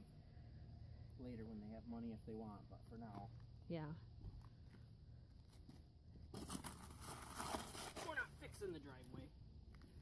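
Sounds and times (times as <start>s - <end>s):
trowel scraping concrete mix: 6.4s - 8.2s.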